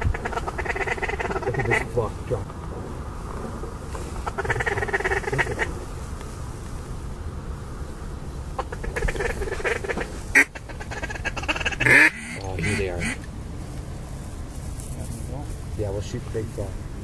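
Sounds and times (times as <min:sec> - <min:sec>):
ducks quacking: 0:00.0 - 0:02.6, 0:03.9 - 0:06.0, 0:08.5 - 0:13.3.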